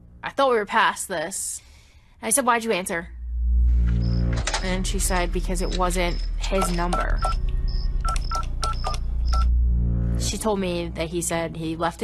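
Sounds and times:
low steady rumble: 2.8 - 12.0
keypad touch-tone beeps: 5.7 - 9.5.

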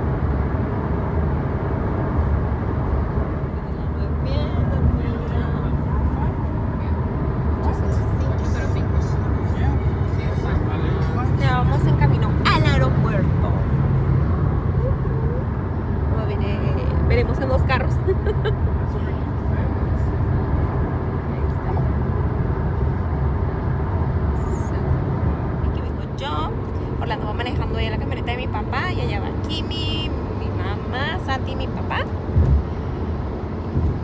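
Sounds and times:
car road and engine rumble: 0.0 - 34.0.

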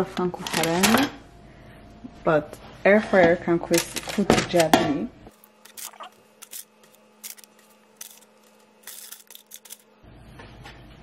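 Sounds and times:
parchment paper crinkling: 5.3 - 9.9.

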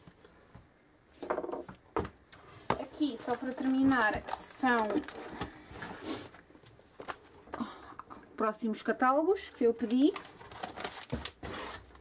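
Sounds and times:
paper rustling: 2.7 - 7.3, 9.6 - 12.0.

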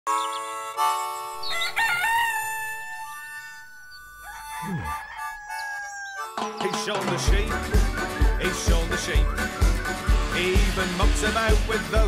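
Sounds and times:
rooster crowing: 1.4 - 6.4.

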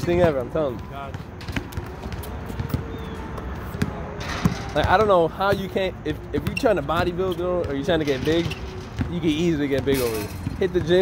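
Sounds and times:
basketball bouncing on hard court: 0.0 - 5.8, 6.4 - 11.0
faint voices: 0.0 - 11.0.

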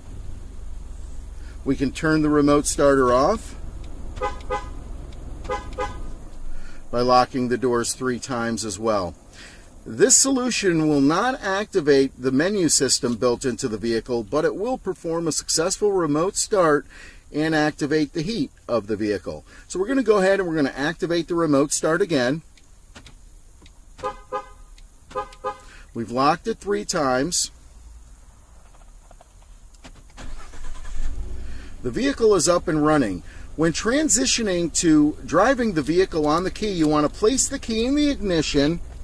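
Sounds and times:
low steady rumble: 0.0 - 39.0
car horn chirps: 4.2 - 6.2, 24.0 - 25.8.

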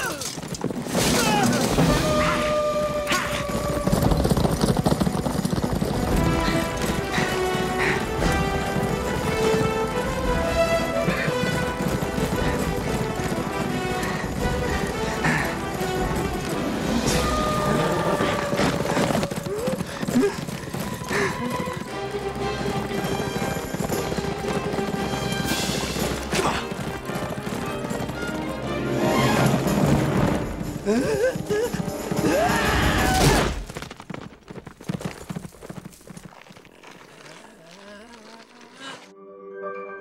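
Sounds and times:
film score music: 0.0 - 33.7
horses galloping: 0.0 - 39.1.

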